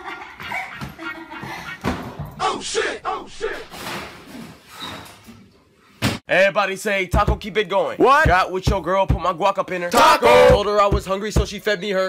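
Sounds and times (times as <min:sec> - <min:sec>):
man and woman laughing: 0:00.0 - 0:02.1.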